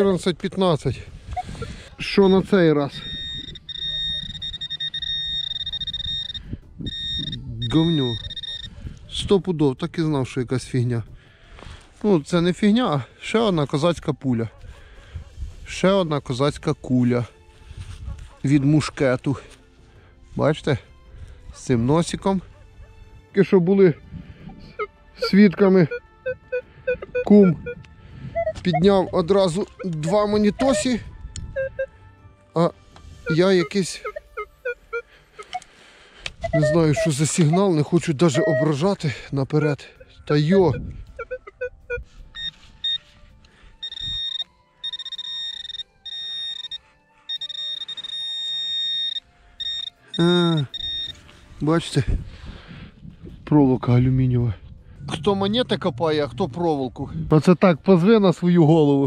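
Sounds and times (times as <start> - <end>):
metal detector high-pitched tone: 1.3 - 8.8, 24.5 - 31.9, 33.2 - 35.7, 36.4 - 39.0, 40.0 - 43.1, 43.8 - 51.3.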